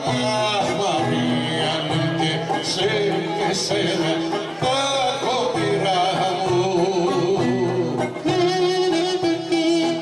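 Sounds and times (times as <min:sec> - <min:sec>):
person singing: 0:00.0 - 0:10.0
violin-led folk band: 0:00.0 - 0:10.0.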